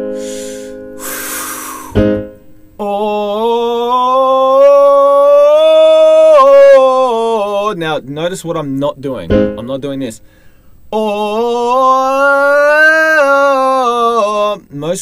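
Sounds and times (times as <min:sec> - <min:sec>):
hard breath out: 0:00.0 - 0:02.0, 0:10.2 - 0:10.9
electric keyboard chord: 0:00.0 - 0:02.6, 0:09.3 - 0:09.7
man singing oh vowel: 0:02.8 - 0:08.4, 0:10.9 - 0:15.0.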